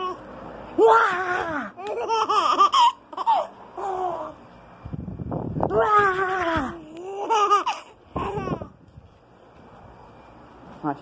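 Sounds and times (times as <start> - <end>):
baby laughing: 1.3 - 4.4, 6.0 - 8.7.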